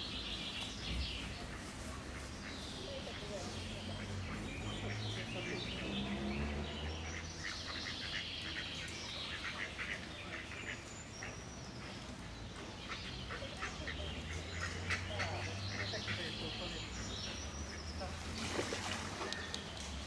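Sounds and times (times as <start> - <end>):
faint distant voices: 0.0 - 20.0
small birds chirping: 0.0 - 20.0
ducks quacking: 1.3 - 19.3.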